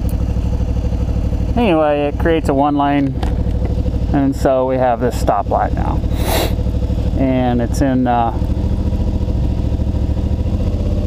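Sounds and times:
motorcycle engine idling: 0.0 - 11.0.

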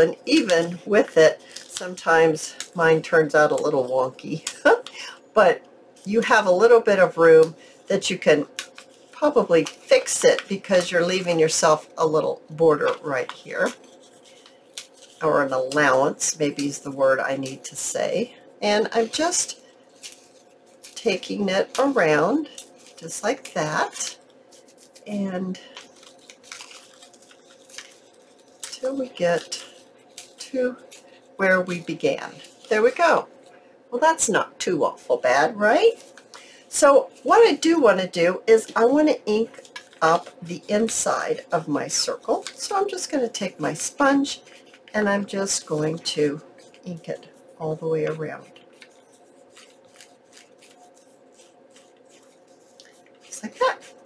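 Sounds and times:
sponge brushing against paper: 8.0 - 33.3, 44.0 - 54.0
paper tearing: 25.9 - 31.0, 48.8 - 54.0.

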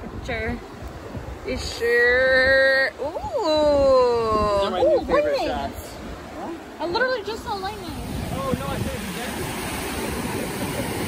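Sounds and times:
sea waves breaking on beach: 0.0 - 11.0.

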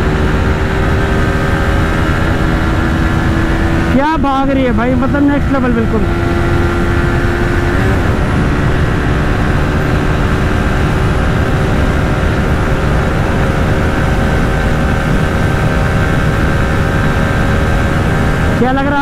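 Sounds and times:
motorcycle engine at high revs: 0.0 - 19.0
wind and road rush: 0.0 - 19.0.

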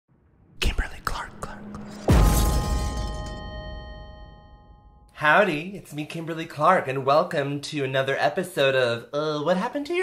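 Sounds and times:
person whispering: 0.6 - 2.0.

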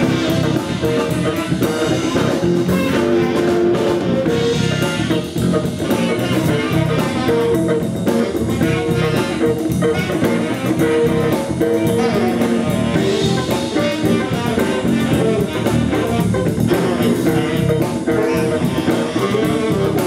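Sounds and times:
baritone saxophone: 0.0 - 20.0
bass guitar: 0.0 - 20.0
drum kit: 0.0 - 20.0
electric guitar: 0.0 - 20.0.

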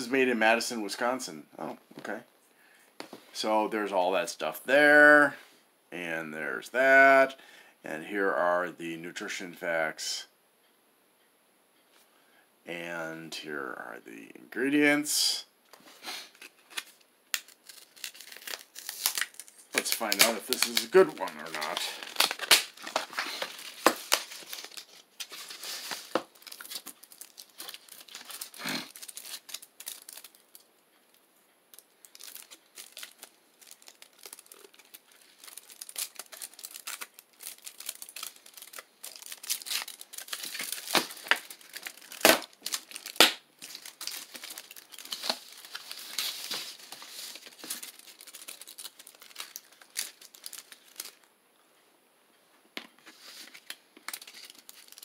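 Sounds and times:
wrapper crinkling and tearing: 16.3 - 30.7, 31.7 - 51.3, 53.3 - 55.0.

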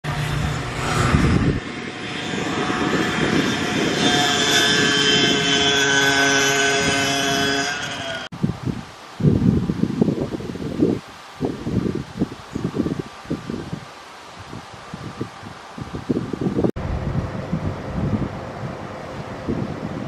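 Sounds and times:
engine drone: 0.0 - 8.3, 16.8 - 20.0
wind gusting on microphone: 0.0 - 20.0.

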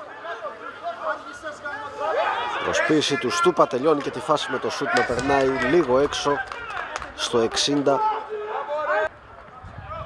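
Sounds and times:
faint voices of players and spectators: 0.0 - 10.0
sports commentary: 0.0 - 10.0.

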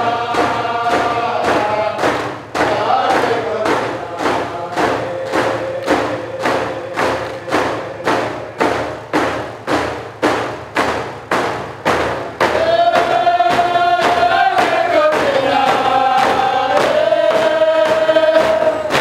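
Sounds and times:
men singing in group: 0.0 - 9.1, 12.4 - 19.0
hand drums beating: 0.0 - 19.0.

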